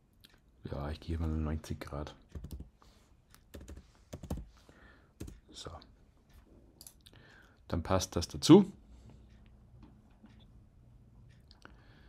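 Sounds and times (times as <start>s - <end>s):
keyboard keystrokes: 2.3s - 2.7s.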